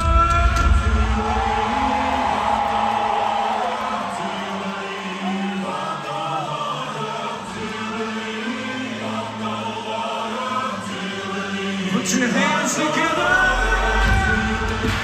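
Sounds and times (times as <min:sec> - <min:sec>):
heavy drums: 0:00.0 - 0:04.4, 0:13.3 - 0:15.0
choir-like held sung notes: 0:00.8 - 0:15.0.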